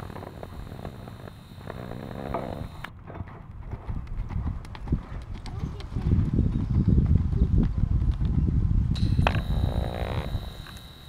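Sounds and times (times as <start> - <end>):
horse hoofbeats on soft dirt: 0.0 - 10.3.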